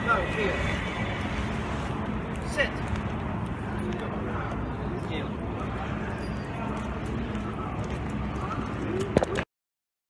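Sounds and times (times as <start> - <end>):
faint voices: 0.0 - 9.4
footsteps on sidewalk: 0.0 - 9.4
traffic hum: 0.0 - 9.5.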